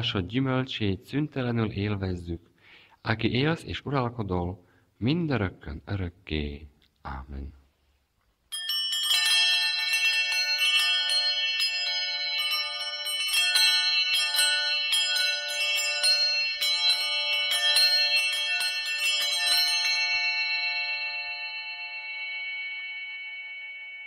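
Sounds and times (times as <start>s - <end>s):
church bells ringing: 8.5s - 24.0s.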